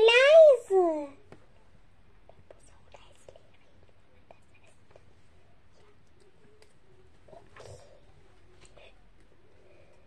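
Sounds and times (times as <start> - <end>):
faint whispering: 2.2 - 10.0.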